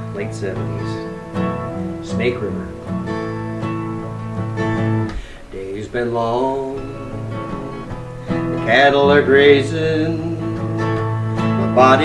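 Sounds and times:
man singing: 0:00.0 - 0:01.1, 0:02.0 - 0:02.8, 0:05.5 - 0:12.0
acoustic guitar strummed: 0:00.0 - 0:12.0.

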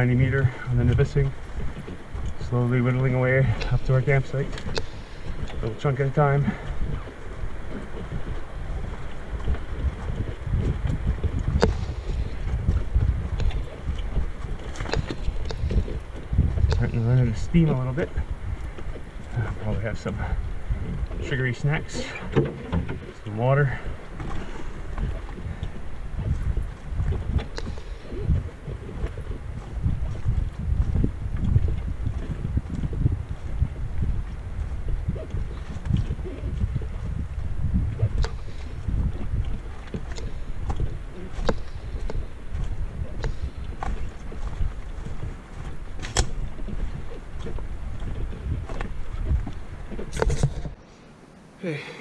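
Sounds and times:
rumble of footfalls: 0:00.0 - 0:50.8
canoe knocking: 0:00.9 - 0:37.1.

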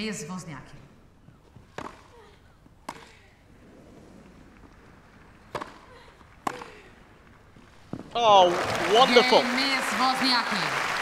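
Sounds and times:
tennis ball hit by racket: 0:01.7 - 0:02.1, 0:02.8 - 0:03.2, 0:05.4 - 0:06.8.

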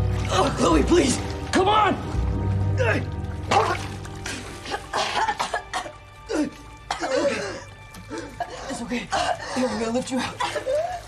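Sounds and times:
woman coughing up water: 0:03.5 - 0:11.0.

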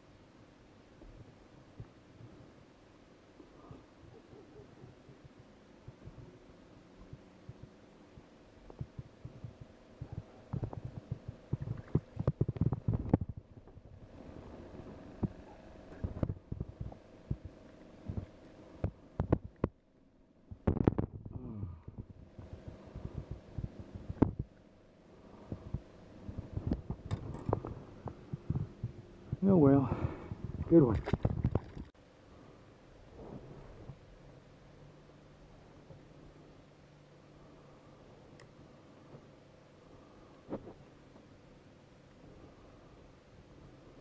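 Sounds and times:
faint steady hum: 0:00.0 - 0:44.0
man speaking: 0:29.4 - 0:31.0.

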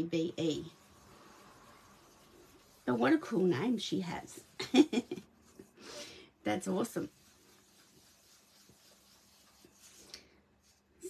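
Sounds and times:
brush rubbing on paper: 0:00.0 - 0:11.0.

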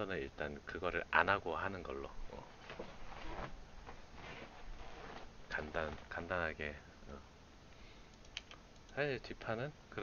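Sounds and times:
computer mouse and keyboard clicks: 0:08.1 - 0:09.0.

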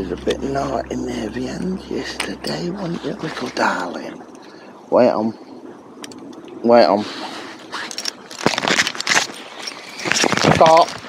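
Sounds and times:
rubbing and rustling on plastic: 0:07.0 - 0:11.0.

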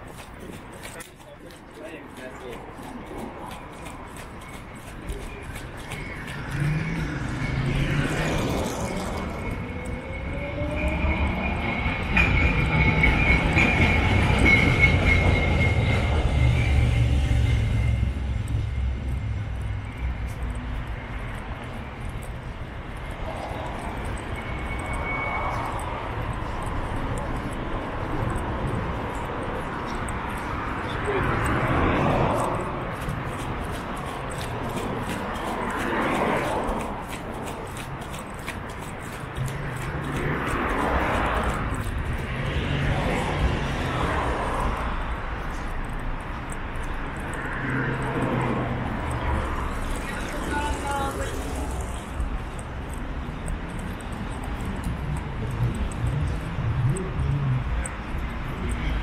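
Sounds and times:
street traffic: 0:00.0 - 0:59.0
heavy vehicle passing: 0:01.8 - 0:59.0
high whine or squeal: 0:05.9 - 0:20.4, 0:23.8 - 0:26.6.

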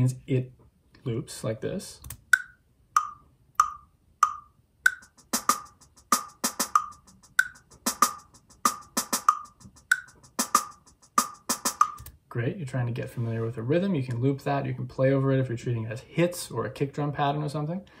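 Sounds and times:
metronome click: 0:02.0 - 0:05.1, 0:06.7 - 0:07.6, 0:09.2 - 0:10.2
snare drum rhythm: 0:02.4 - 0:12.1.

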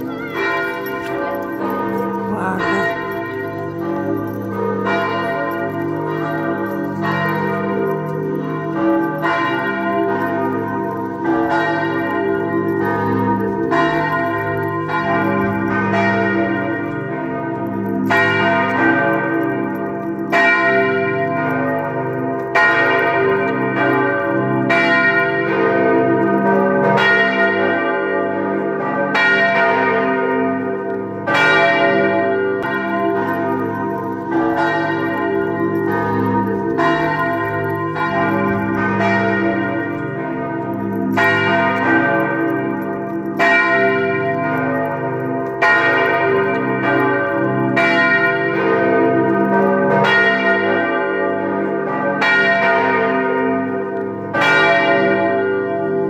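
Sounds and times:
large church bells ringing: 0:00.0 - 0:56.0.

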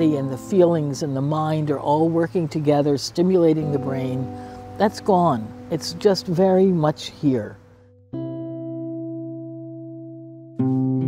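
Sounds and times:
guitar chord ringing: 0:00.0 - 0:02.0, 0:03.3 - 0:11.0.

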